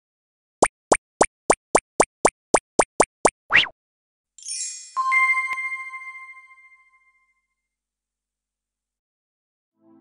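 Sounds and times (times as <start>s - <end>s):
cartoon pop blips: 0.6s - 3.8s.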